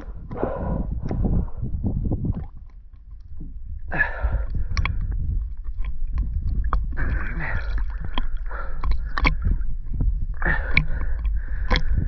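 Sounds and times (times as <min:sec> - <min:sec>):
low rumble: 0:00.0 - 0:12.0
water sloshing and bubbling: 0:00.0 - 0:12.0
small clicks: 0:10.7 - 0:12.0.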